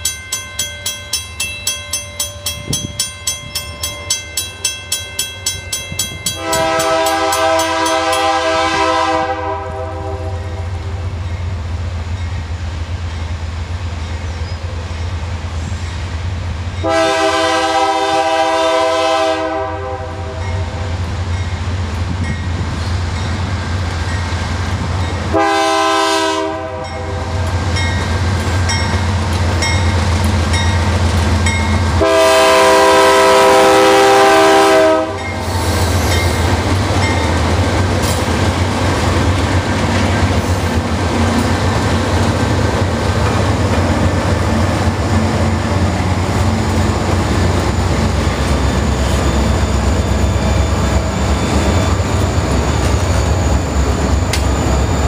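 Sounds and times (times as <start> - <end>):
diesel locomotive engines droning: 0.0 - 55.0
locomotive air horn blasts: 6.3 - 10.8, 16.8 - 20.6, 25.3 - 27.3, 31.9 - 35.4
locomotives rumbling past: 26.7 - 55.0.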